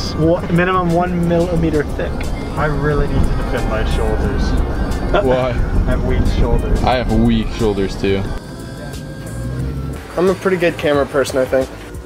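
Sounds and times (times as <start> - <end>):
car engine rumble: 0.0 - 12.0
road noise: 0.0 - 12.0.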